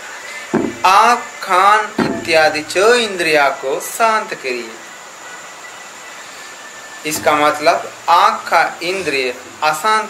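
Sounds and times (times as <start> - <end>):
background hiss: 0.0 - 10.0
faint high whine: 0.0 - 10.0.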